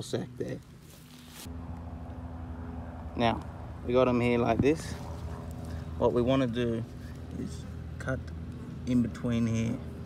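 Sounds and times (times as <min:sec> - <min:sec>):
low motor hum: 0:00.0 - 0:10.0
short rustle: 0:00.7 - 0:01.5.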